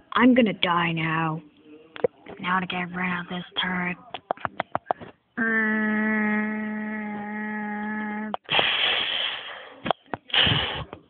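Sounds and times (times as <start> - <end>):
child making buzzing hum: 5.4 - 8.6
child making hissing explosion sound: 8.5 - 9.5, 10.3 - 10.9.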